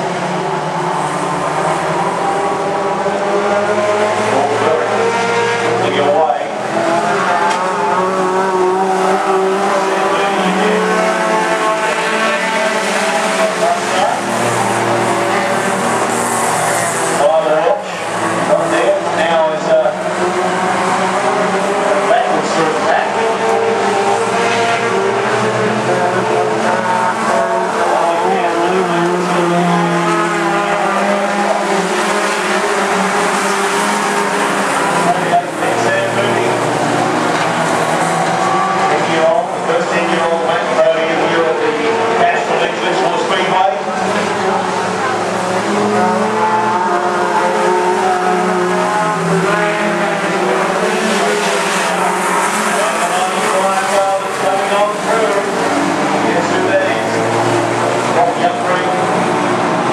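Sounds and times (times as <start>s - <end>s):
race car engines running hard: 0.0s - 59.9s.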